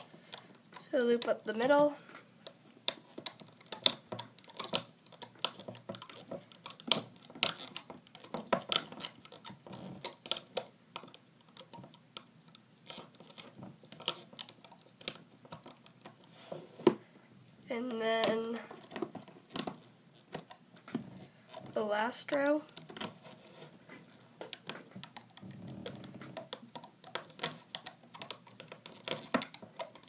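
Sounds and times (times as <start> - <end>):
rubber bands clicking on plastic pegs: 2.4 - 16.3, 24.4 - 30.0.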